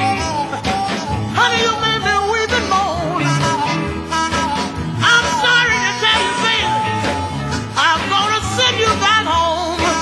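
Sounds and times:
bending lead guitar line: 0.0 - 10.0
blues band playing: 0.0 - 10.0.

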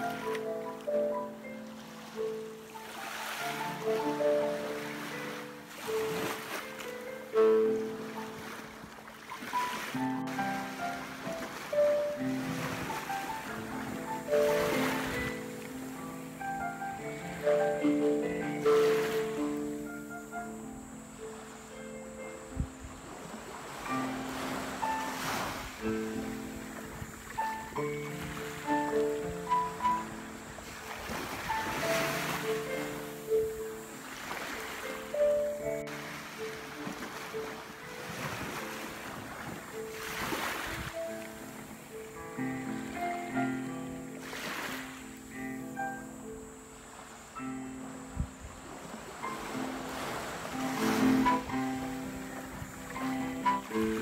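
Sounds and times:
waves washing onto beach: 0.0 - 20.5, 21.1 - 54.0
solo piano playing: 0.0 - 54.0.

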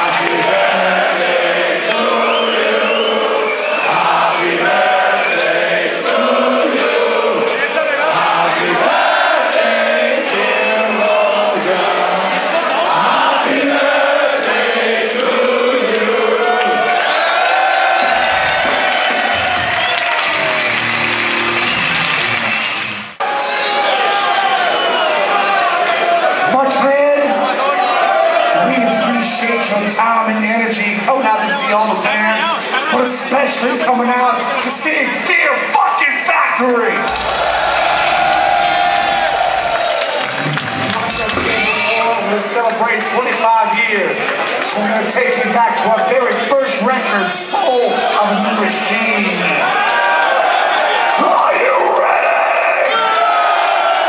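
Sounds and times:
concert crowd cheering and chanting: 0.0 - 54.0
crowd noise: 0.0 - 54.0
music: 18.3 - 23.2
rapid drum roll: 37.1 - 42.0.

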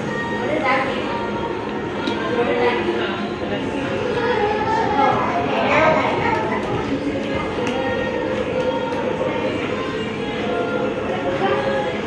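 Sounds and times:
indistinct voices: 0.0 - 12.0
music playing: 0.0 - 12.0.

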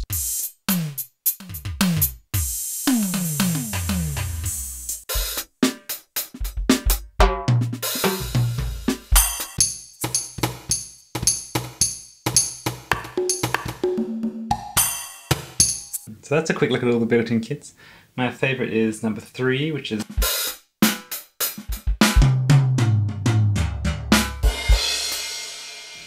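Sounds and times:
bright hi-hat strokes: 0.0 - 6.3, 7.8 - 13.9, 14.8 - 16.1, 24.2 - 26.0
kick and snare beat: 0.0 - 16.1, 20.0 - 25.3
electronic drum fills: 1.8 - 5.8, 6.4 - 16.0.

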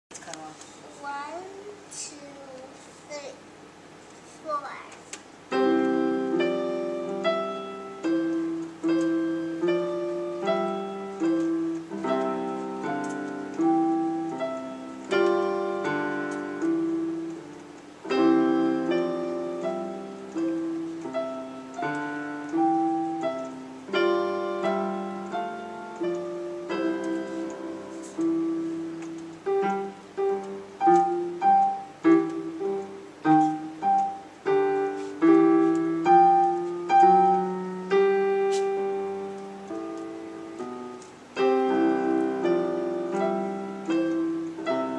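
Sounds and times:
keyboard piano duet lullaby: 4.4 - 44.9.

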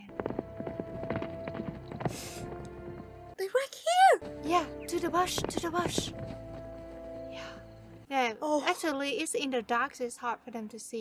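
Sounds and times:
horse hoofbeats: 0.0 - 3.4, 4.2 - 8.0.

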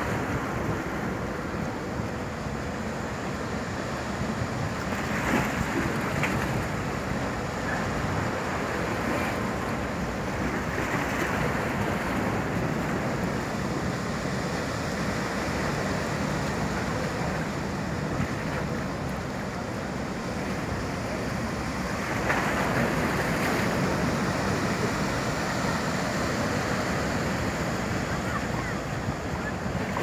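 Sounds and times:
ferry wash churning: 4.2 - 30.0.

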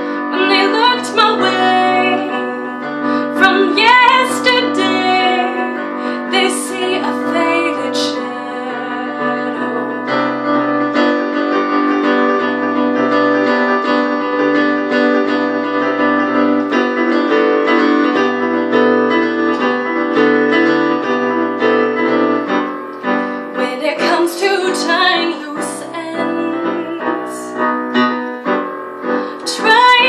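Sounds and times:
electric keyboard playing chords: 0.0 - 30.0.

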